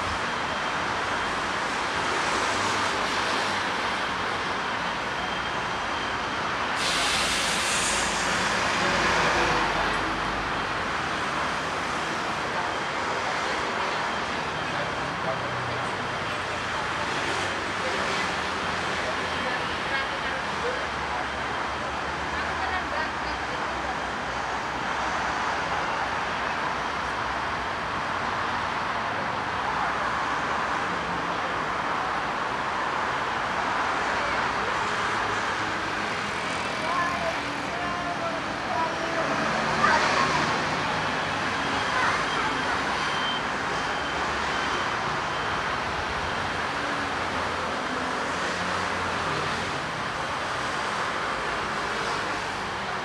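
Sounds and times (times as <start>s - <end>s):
cars and scooters passing: 27.4s - 53.0s.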